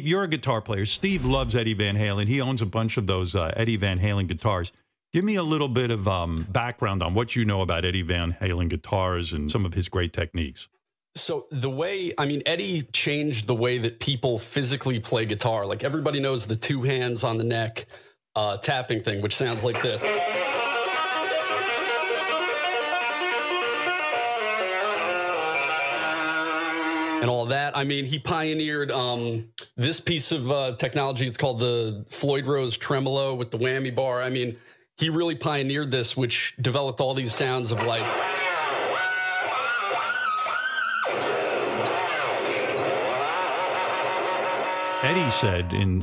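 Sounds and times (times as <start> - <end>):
electric guitar whammy bar bends: 38.0 - 45.8.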